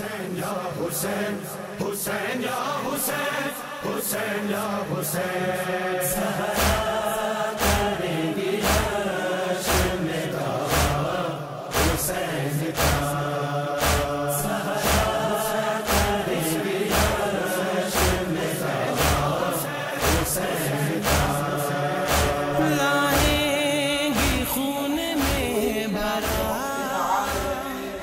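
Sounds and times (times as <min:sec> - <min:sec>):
group chanting to a beat: 0:00.0 - 0:28.0.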